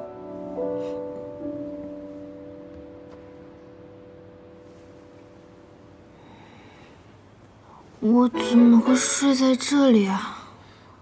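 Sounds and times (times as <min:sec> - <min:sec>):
soft piano chord: 0:00.0 - 0:07.0, 0:08.3 - 0:09.4.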